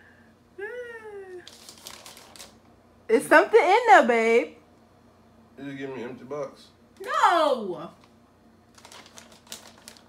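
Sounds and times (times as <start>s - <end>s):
person humming: 0.6s - 1.5s
gift box clicks and rustles: 8.8s - 10.0s.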